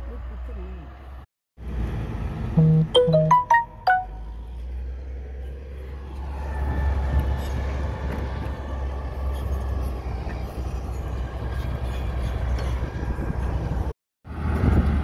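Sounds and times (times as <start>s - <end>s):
diesel earthmoving machinery rumble: 4.5s - 15.0s.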